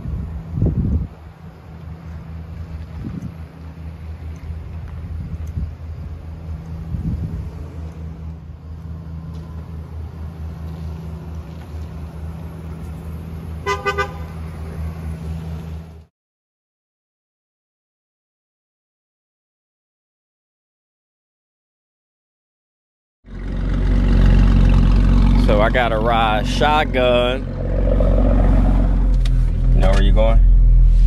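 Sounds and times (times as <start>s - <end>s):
pickup truck driving off: 0.1s - 16.0s, 23.3s - 31.0s
car horn toots: 13.6s - 14.5s.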